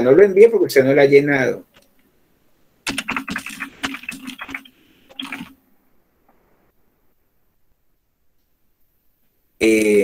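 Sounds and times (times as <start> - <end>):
computer keyboard typing: 2.9 - 5.6.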